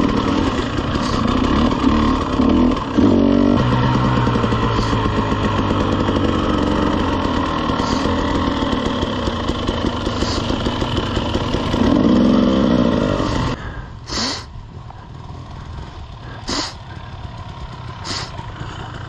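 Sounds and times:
dirt bike engine running: 0:00.0 - 0:19.0.

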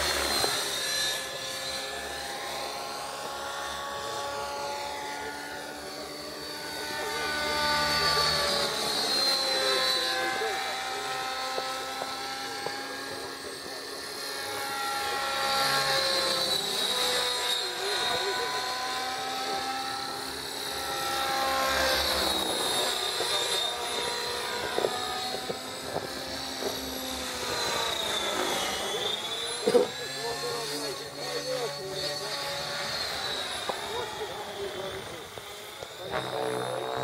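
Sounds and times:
rc helicopter whine: 0:00.0 - 0:37.0
rotor drone: 0:00.0 - 0:37.0.

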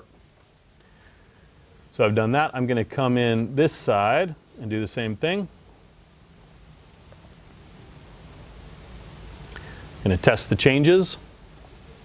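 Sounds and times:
steady hiss: 0:00.0 - 0:12.0.

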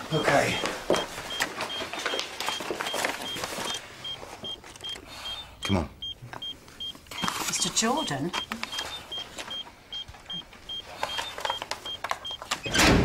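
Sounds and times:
patient monitor beeping: 0:00.0 - 0:12.8.

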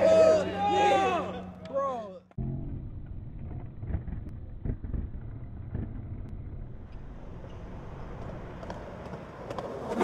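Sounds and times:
skateboard wheels rolling on concrete: 0:03.0 - 0:10.0
skateboard clacks: 0:07.6 - 0:10.0.

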